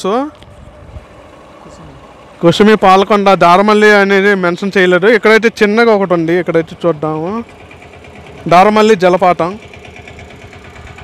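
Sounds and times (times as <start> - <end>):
motorcycle engine and road noise: 0.0 - 11.0.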